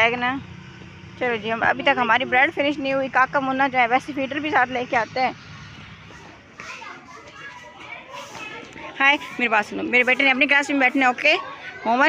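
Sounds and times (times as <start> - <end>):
distant children's voices: 5.4 - 12.0.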